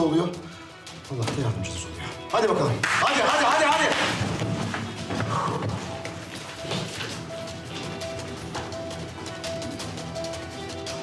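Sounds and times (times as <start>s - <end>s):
tense background music: 0.0s - 11.0s
hurried footsteps: 3.3s - 10.2s.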